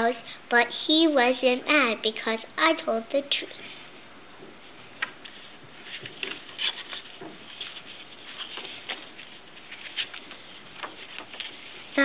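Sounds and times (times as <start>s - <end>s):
paper pages rustling: 5.0s - 12.0s
paper flicks: 5.9s - 11.8s.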